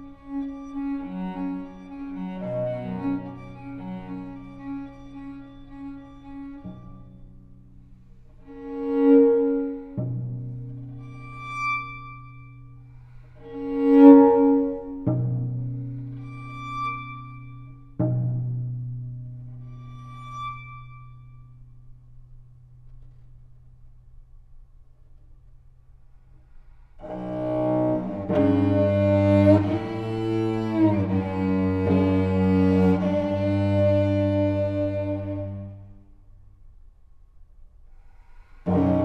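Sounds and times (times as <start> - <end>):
solo cello playing slowly: 0.0 - 22.6, 26.8 - 36.4, 38.2 - 39.0.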